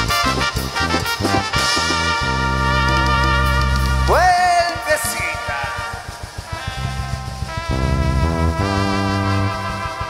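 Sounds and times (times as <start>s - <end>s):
bass guitar: 0.0s - 5.2s, 5.8s - 10.0s
drum kit: 0.0s - 10.0s
keyboard chords: 0.0s - 10.0s.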